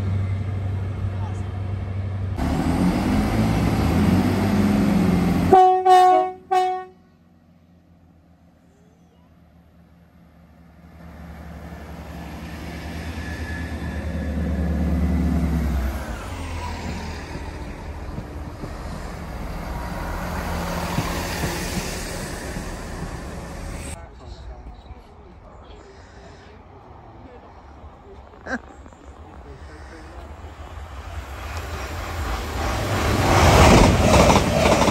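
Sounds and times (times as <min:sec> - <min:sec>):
train coaches rumbling past: 0:00.0 - 0:08.3, 0:09.4 - 0:34.9
diesel train engine drone: 0:00.0 - 0:34.9.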